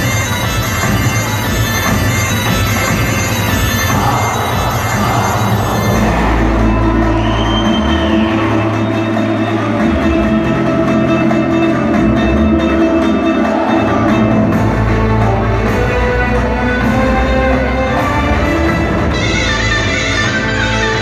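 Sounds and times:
folk dance music: 0.0s - 21.0s.

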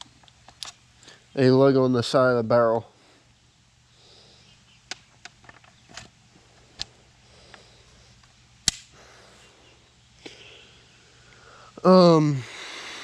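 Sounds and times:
rifle handling clicks and knocks: 4.9s - 6.2s.

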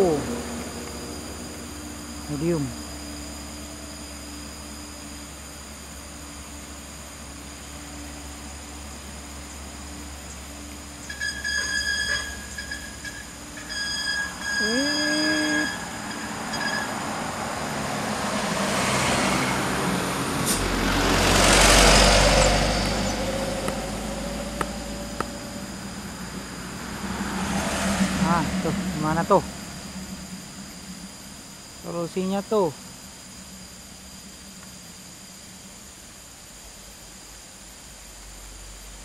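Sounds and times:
truck and bus engines rumbling: 0.0s - 2.8s, 14.6s - 31.5s
high-pitched tone: 14.4s - 15.8s.

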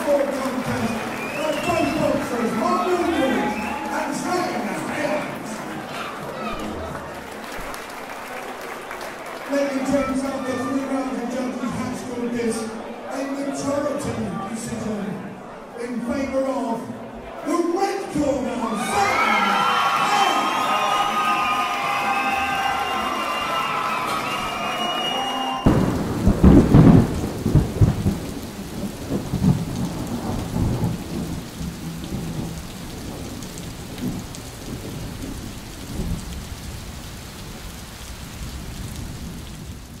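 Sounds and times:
rain hiss: 0.0s - 12.8s, 19.0s - 40.0s
hall full of voices: 0.0s - 26.2s
thunder crash: 25.6s - 33.4s.

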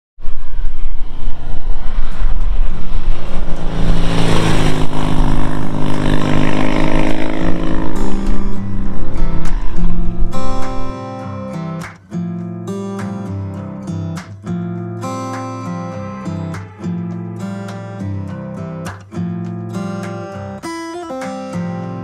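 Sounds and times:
motorcycle passing at speed: 0.5s - 10.9s
guitar music: 0.5s - 22.0s.

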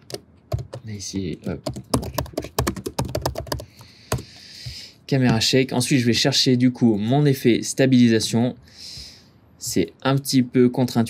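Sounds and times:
computer keyboard typing: 0.0s - 4.9s.

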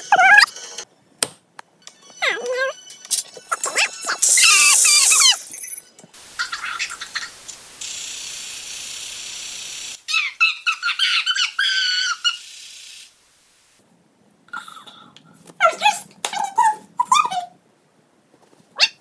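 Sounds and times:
sped-up squeaky voices: 0.0s - 0.6s, 2.2s - 5.4s
loud burst: 4.2s - 5.4s.

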